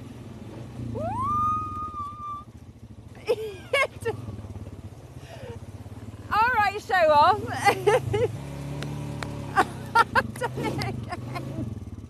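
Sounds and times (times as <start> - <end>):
quad bike engine running: 0.0 - 12.0
long rising call: 0.9 - 2.5.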